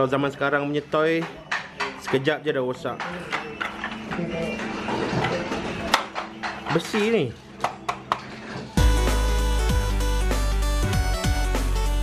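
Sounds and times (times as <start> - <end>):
loud background music: 4.6 - 12.0.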